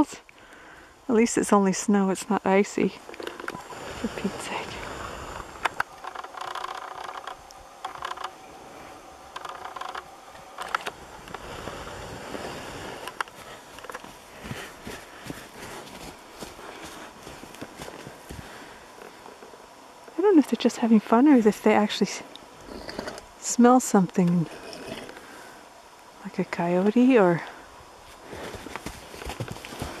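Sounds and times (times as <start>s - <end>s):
sharp clicks: 5.6s - 8.4s, 9.3s - 11.4s
hooves crunching in snow: 11.3s - 19.2s, 28.0s - 30.0s.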